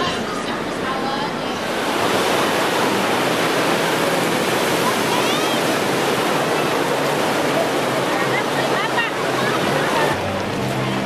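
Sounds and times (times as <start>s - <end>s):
crowd voices: 0.0s - 11.0s
surf washing over shallows: 0.0s - 11.0s.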